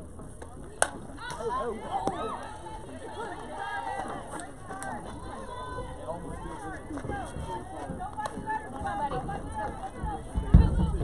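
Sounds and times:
high voices shouting: 1.1s - 11.0s.

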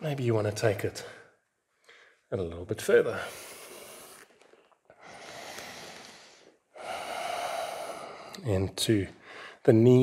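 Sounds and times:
person breathing deeply: 5.0s - 8.4s, 9.2s - 9.6s.

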